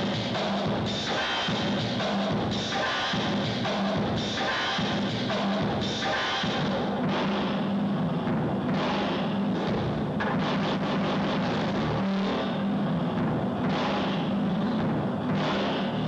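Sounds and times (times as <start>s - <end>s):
low electronic drone: 0.0s - 16.0s.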